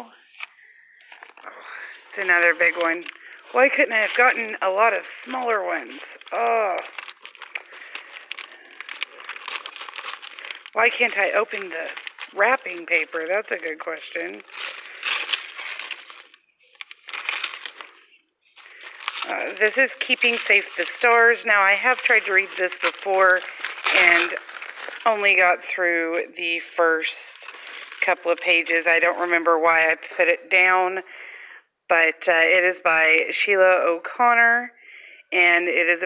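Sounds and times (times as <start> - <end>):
wrapping paper rustling: 0.2 - 25.7, 27.1 - 29.4.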